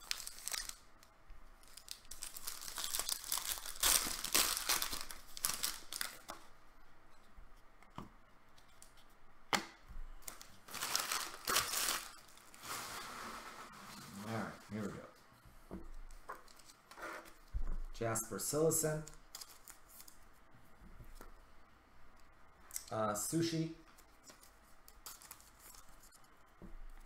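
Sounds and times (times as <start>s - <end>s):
foil wrappers tearing and crinkling: 0.0s - 0.9s, 1.6s - 6.3s, 10.2s - 13.0s.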